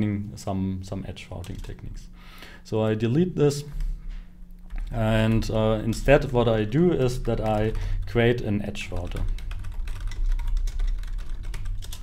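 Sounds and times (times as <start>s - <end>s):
typing on a computer keyboard: 7.0s - 8.1s, 8.8s - 12.0s.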